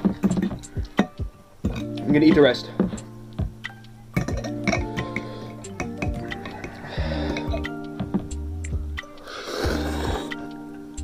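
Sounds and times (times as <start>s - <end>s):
plucked string music: 0.0s - 11.0s.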